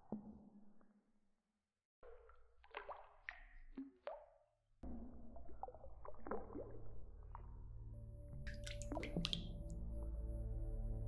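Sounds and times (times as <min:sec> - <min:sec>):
water drops plopping into pool: 0:02.0 - 0:07.6, 0:08.4 - 0:09.8.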